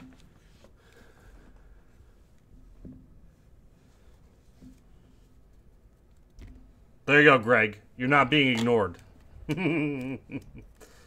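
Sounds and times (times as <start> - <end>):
man laughing: 9.4 - 10.9.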